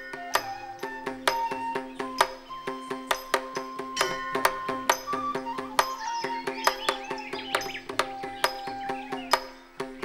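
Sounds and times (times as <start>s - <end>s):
high sliding melodic line: 0.0s - 10.0s
sharp percussion strokes: 0.0s - 10.0s.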